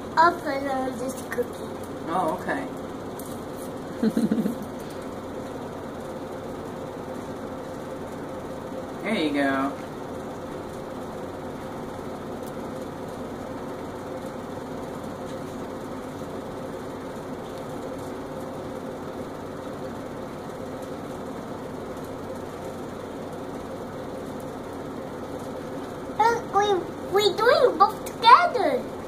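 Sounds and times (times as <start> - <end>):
steady mechanical hum: 0.0 - 29.0.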